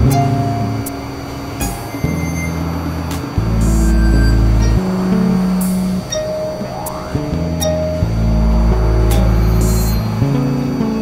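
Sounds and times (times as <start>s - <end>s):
experimental electronic music: 0.0s - 11.0s
heavy low drone: 0.0s - 11.0s
held synth tones: 0.0s - 11.0s.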